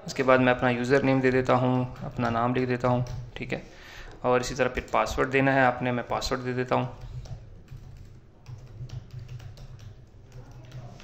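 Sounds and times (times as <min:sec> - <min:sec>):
low background hum: 0:00.0 - 0:11.0
typing on computer keyboard: 0:02.9 - 0:03.3, 0:06.8 - 0:11.0.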